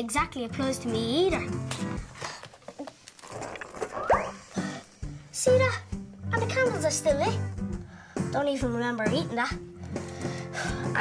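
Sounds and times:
background music: 0.0 - 2.5, 3.2 - 11.0
cartoon character retching: 3.2 - 4.8.

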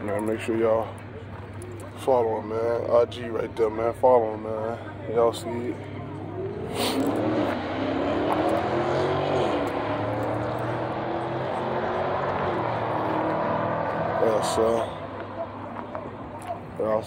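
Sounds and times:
car engine droning: 2.8 - 17.0.

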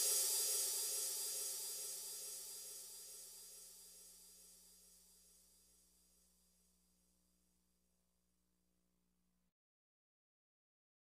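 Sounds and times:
cymbal crash ringing out: 0.0 - 4.0.

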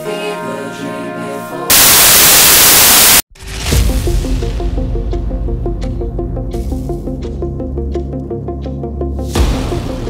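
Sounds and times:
loud static hiss: 1.7 - 3.2
cinematic music with held tones: 3.7 - 10.0.

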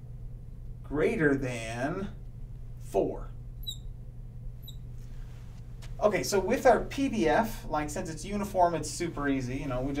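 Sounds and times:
steady low hum: 0.0 - 10.0
marker squeaking on glass: 3.6 - 3.9, 4.6 - 4.8.

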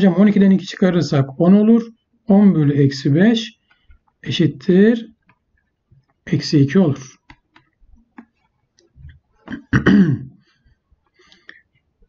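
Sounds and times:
man clearing his throat: 9.5 - 10.4.

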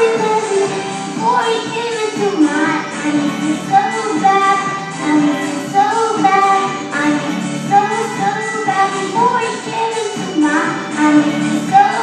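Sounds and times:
backing music: 0.0 - 12.0
children singing into microphones: 0.0 - 12.0.

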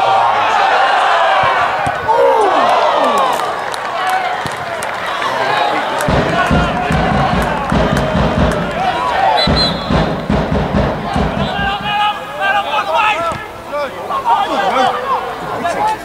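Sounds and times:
crowd shouting and chanting: 0.0 - 16.0
low rhythmic thuds: 6.0 - 12.6.

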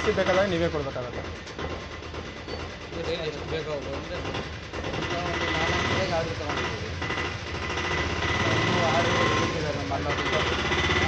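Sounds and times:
people talking: 0.0 - 1.2, 2.9 - 7.0, 8.4 - 11.0
rapid mechanical rattle: 0.0 - 11.0.

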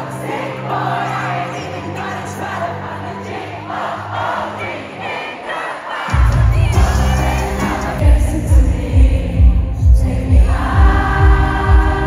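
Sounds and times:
amplified live pop music: 0.0 - 12.0
crowd shouting and singing: 0.0 - 12.0
heavy bass beat: 6.1 - 12.0.

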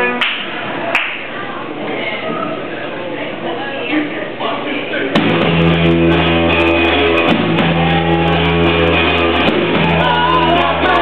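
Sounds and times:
live rock band playing: 5.2 - 11.0.

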